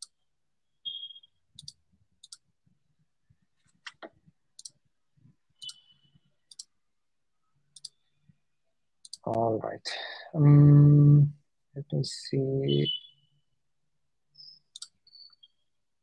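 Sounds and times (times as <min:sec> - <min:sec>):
computer mouse clicks: 0:01.6 - 0:02.4, 0:03.8 - 0:04.8, 0:05.6 - 0:05.9, 0:06.5 - 0:06.7, 0:07.7 - 0:08.0, 0:09.0 - 0:09.3, 0:14.7 - 0:15.4.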